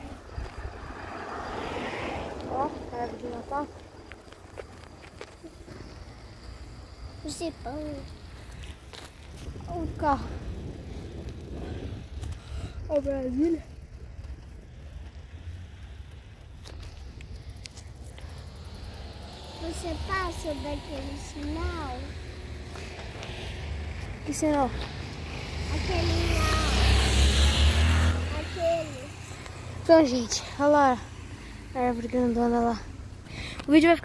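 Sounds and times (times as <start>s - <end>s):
low rumbling noise: 0.0s - 5.0s.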